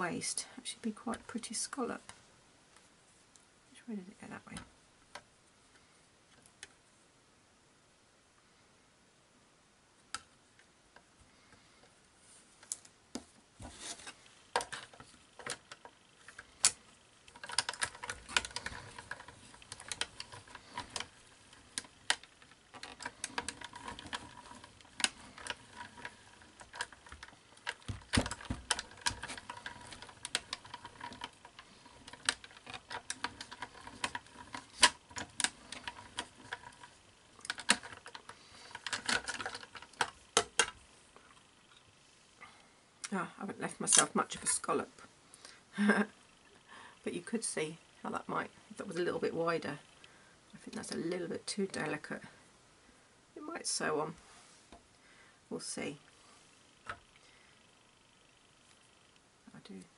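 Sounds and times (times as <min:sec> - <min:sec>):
die-cutting machine clicks and creaks: 0:13.7 - 0:40.8.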